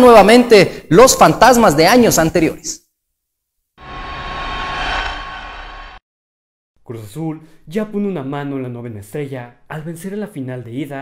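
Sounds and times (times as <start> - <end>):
whooshing transition effect: 3.8 - 6.0.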